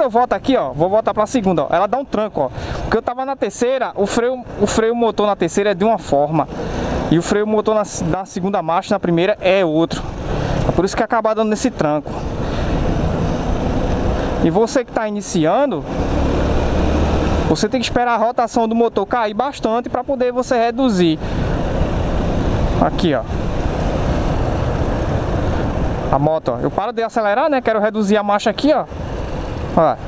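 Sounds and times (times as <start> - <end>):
motorcycle engine and road noise: 0.0 - 30.0.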